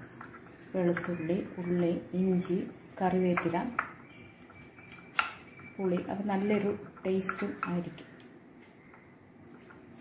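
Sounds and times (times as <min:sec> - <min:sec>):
spoon clinking glass bowl: 0:04.8 - 0:07.8.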